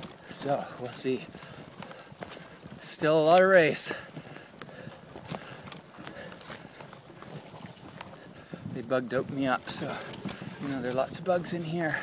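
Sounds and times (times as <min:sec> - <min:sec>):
faint rustling: 0:00.0 - 0:12.0.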